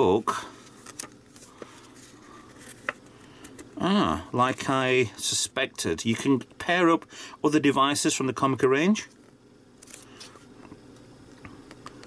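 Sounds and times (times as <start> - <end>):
paper rustling: 0.6 - 3.6.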